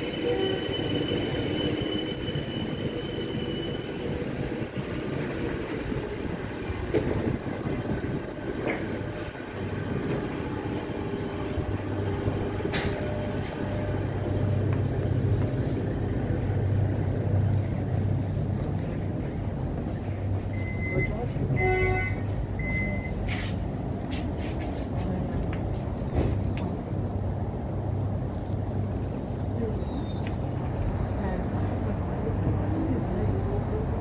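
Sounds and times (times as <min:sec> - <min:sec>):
electric train humming: 0:00.0 - 0:24.0
door-closing warning beeps: 0:20.6 - 0:23.3.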